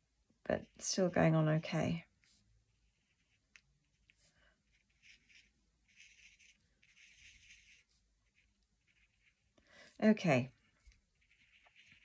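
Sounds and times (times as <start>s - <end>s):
marker tip scratching on card: 4.7s - 9.5s, 11.2s - 12.0s.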